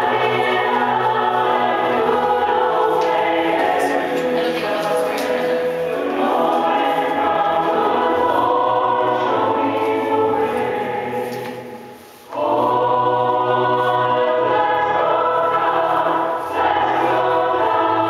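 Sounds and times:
choir singing in harmony: 0.0 - 18.0.

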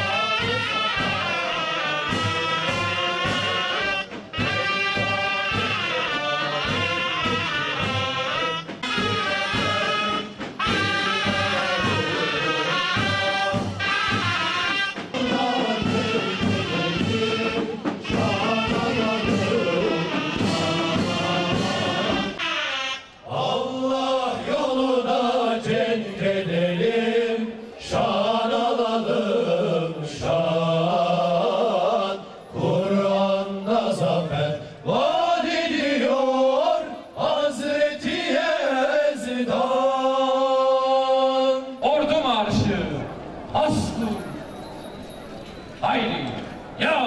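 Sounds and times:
men chanting in unison: 0.0 - 13.8, 15.1 - 22.4, 23.2 - 44.2
men singing together: 0.0 - 13.8, 15.1 - 22.4, 23.2 - 41.8
struck drum beats: 0.0 - 22.4
military band playing: 0.0 - 23.2, 41.9 - 47.0.

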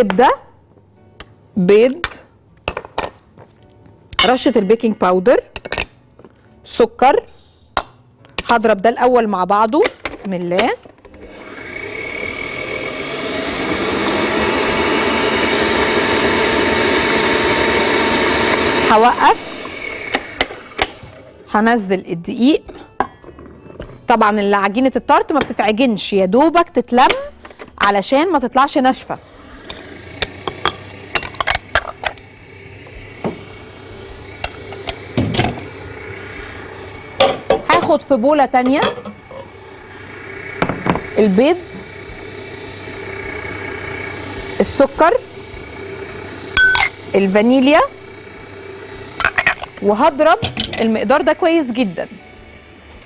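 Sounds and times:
electric stand mixer motor whine: 11.0 - 21.6, 28.8 - 53.0.

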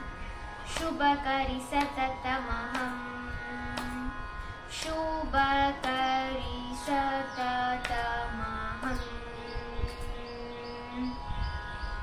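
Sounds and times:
steady drone: 0.0 - 12.0.

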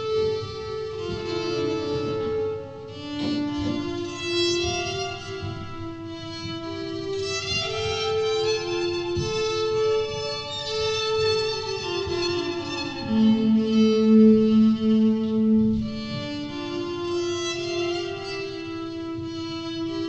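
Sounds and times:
electric violin bowed notes: 0.0 - 20.0.

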